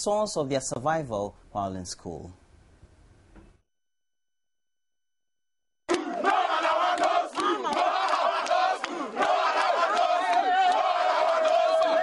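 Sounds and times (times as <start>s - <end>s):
crowd shouting and chanting: 5.9s - 12.0s.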